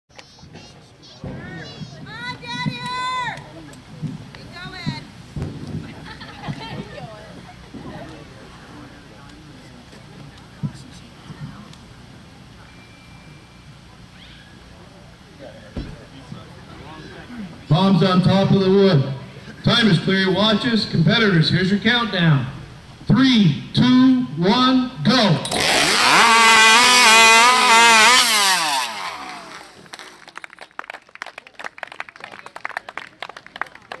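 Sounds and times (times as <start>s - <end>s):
faint high whistle: 12.6s - 14.6s
steady low rumble: 16.0s - 25.1s
chainsaw revving: 25.4s - 30.3s.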